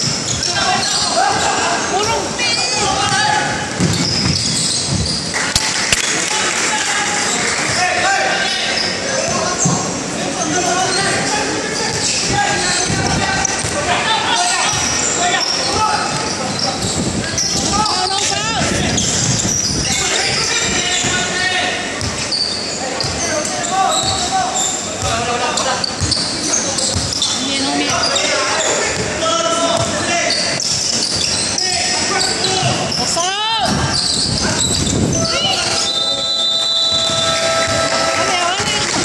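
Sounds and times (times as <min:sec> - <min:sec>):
sneakers squeaking: 0:00.0 - 0:05.7, 0:07.2 - 0:21.2, 0:21.9 - 0:39.0
chatter and shouts: 0:00.0 - 0:39.0
ball bouncing on wooden court: 0:02.8 - 0:05.3, 0:26.9 - 0:28.1, 0:29.7 - 0:31.4.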